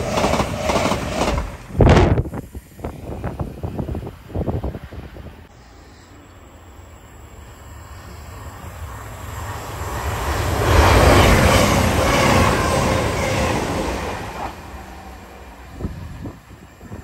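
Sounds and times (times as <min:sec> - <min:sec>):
diesel train passing at speed: 0:00.0 - 0:17.0.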